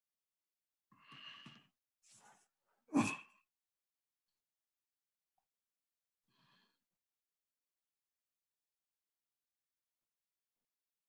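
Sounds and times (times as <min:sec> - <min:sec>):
person sighing: 0:02.9 - 0:03.3.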